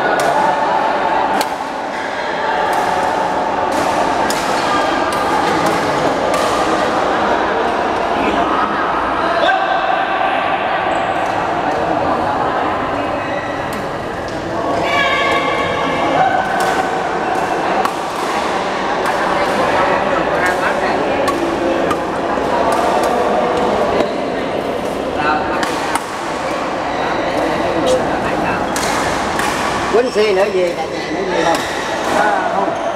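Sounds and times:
babble of voices: 0.0s - 32.9s
rackets striking shuttlecocks: 2.7s - 7.1s, 16.4s - 24.1s, 25.6s - 26.6s, 28.6s - 30.8s.

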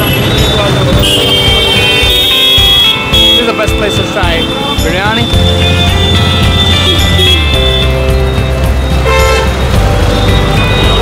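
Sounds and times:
vehicle horns tooting: 0.0s - 8.2s, 8.9s - 11.0s
engine and road rumble: 0.0s - 11.0s.

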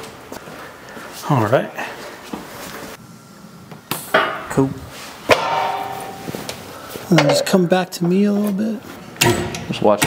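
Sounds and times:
metal clank with ring: 5.3s - 6.4s.

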